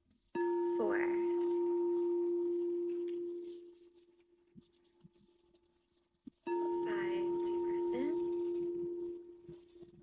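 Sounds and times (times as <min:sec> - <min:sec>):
singing bowl struck with mallet: 0:00.4 - 0:04.0, 0:06.5 - 0:09.8.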